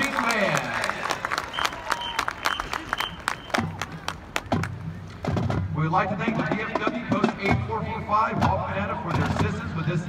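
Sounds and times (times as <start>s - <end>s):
crowd clapping: 0.0s - 4.8s.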